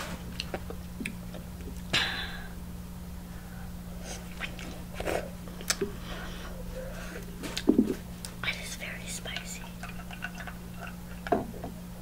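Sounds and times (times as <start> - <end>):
person whispering: 8.4 - 9.8.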